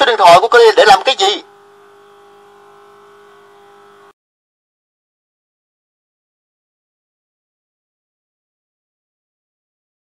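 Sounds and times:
electrical hum: 0.0s - 4.2s
faint steady tones: 0.0s - 4.2s.

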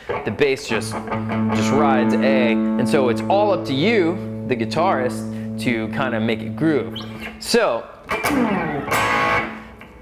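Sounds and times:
electric guitar strum: 0.0s - 10.0s.

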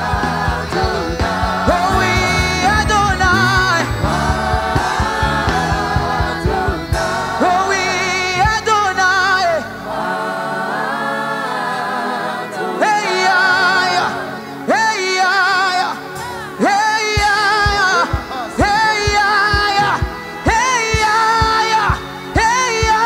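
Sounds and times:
instrumental accompaniment: 0.0s - 14.9s
gospel singing with vibrato: 0.0s - 23.0s
low drum beat: 0.2s - 7.4s.

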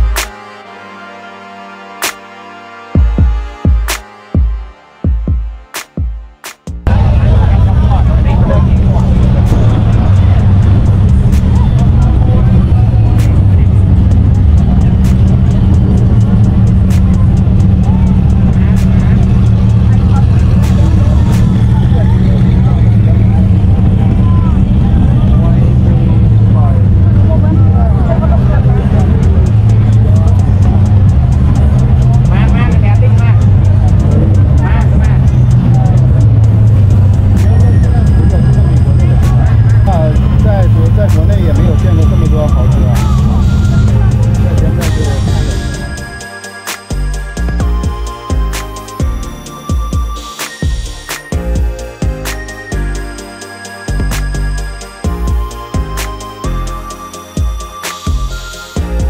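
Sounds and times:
crowd talking: 6.7s - 59.0s
sports car engines idling: 6.9s - 49.5s.

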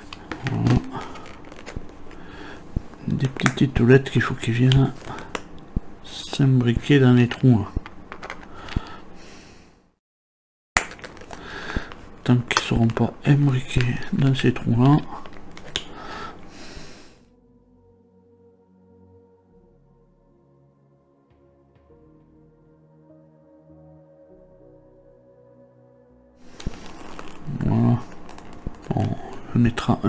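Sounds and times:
plastic handling noise: 0.0s - 9.0s, 10.8s - 16.5s, 26.4s - 30.0s
plastic parts pressed together: 0.1s - 2.2s, 7.8s - 8.9s, 10.8s - 13.0s, 15.2s - 15.9s.

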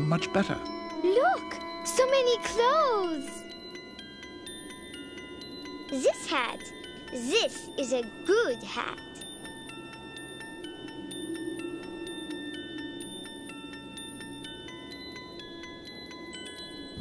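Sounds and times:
chime-like bell notes: 0.0s - 17.0s
low sustained tone: 0.0s - 17.0s.

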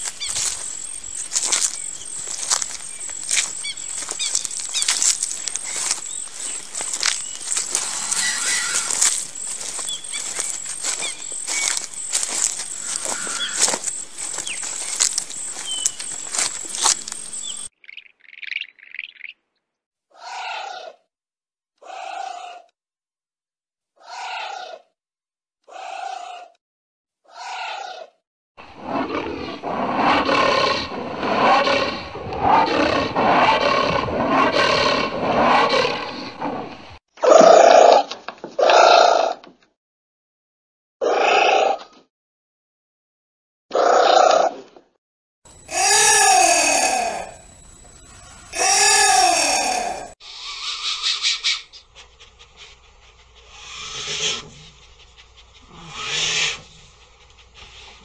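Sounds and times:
anteater rough roar-like calls: 7.7s - 9.1s, 12.6s - 13.8s, 28.8s - 36.8s, 45.6s - 50.2s
anteater short calls: 7.8s - 9.1s, 12.8s - 13.8s, 45.6s - 47.4s, 48.2s - 51.6s.

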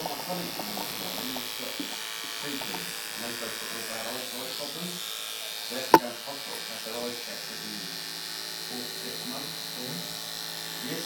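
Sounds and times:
electric hair clippers buzzing: 8.0s - 10.8s.

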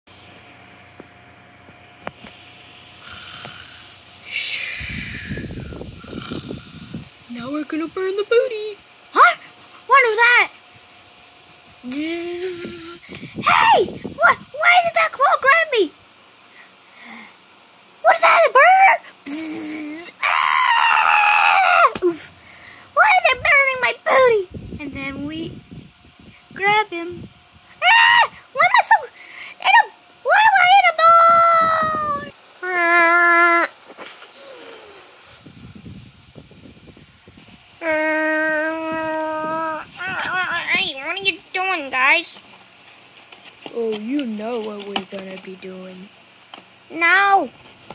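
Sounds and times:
child squealing and crying: 18.1s - 22.2s, 27.8s - 29.0s, 29.8s - 33.8s, 37.8s - 40.6s.

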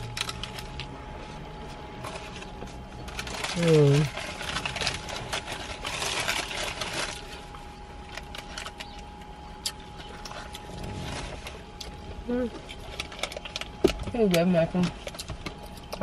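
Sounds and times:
plastic and paper wrapper crinkling: 0.0s - 16.0s.

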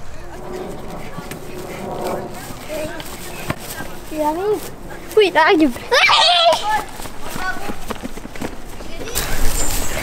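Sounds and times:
children chattering and calling out: 0.0s - 10.0s
footfalls on grass: 2.0s - 10.0s
child calling out: 5.9s - 6.9s.

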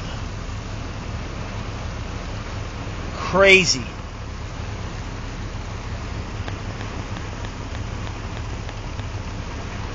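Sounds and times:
floodwater rushing: 0.0s - 9.9s
rain: 0.0s - 9.9s.

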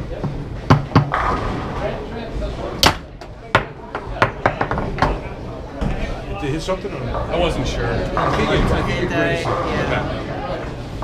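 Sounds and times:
room chatter: 0.0s - 11.0s
foosball ball clacking: 0.2s - 1.5s, 2.8s - 5.2s.

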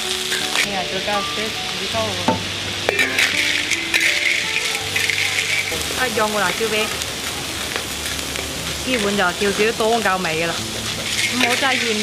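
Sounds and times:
background music: 0.0s - 6.9s
food sizzling in a hot pan: 0.0s - 12.0s.

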